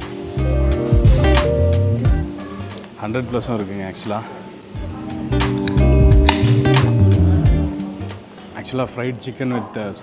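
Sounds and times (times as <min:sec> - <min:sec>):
guitar background music: 0:00.0 - 0:08.9
strong bass: 0:00.4 - 0:02.3, 0:05.8 - 0:07.8.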